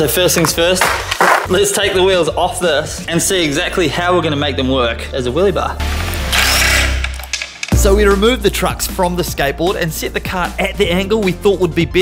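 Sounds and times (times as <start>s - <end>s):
background music: 0.0s - 12.0s
cordless drill whirring: 6.1s - 7.5s.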